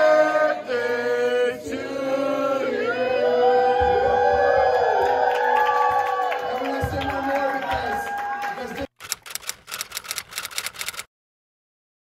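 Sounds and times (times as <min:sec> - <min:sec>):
typewriter key clicks: 0:09.0 - 0:11.1.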